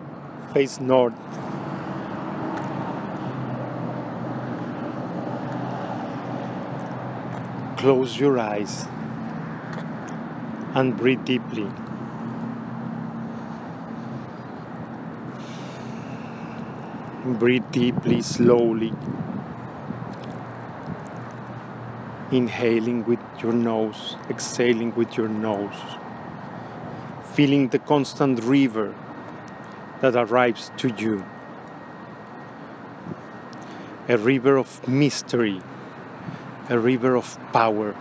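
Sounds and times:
steady rushing noise: 0.0 - 23.0
steady background hiss: 7.2 - 9.5.

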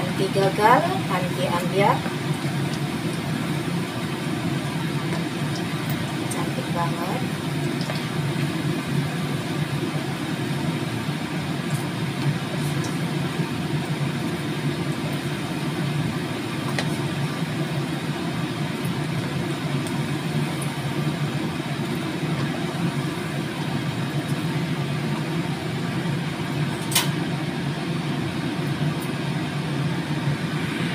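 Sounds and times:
steady low hum: 0.0 - 30.9
fritters sizzling in hot oil: 0.2 - 30.9.

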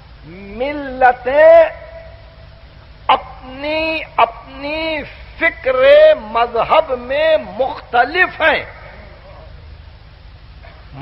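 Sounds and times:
low electrical hum: 0.0 - 11.0
tape hiss: 0.0 - 11.0.

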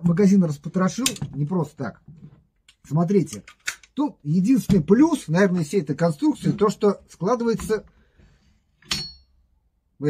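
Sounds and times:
metal stock snapping shut: 1.0 - 1.3, 8.8 - 9.2.

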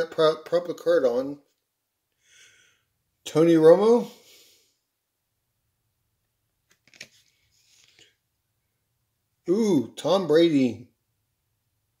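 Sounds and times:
trading cards being handled: 6.6 - 8.2.

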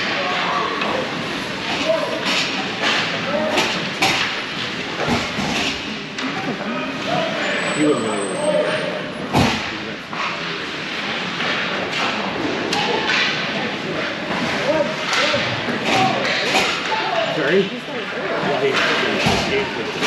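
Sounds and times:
hockey sticks and puck knocking: 0.0 - 6.6, 9.5 - 17.2, 18.7 - 20.0
indistinct voices in a rink: 0.0 - 20.0.

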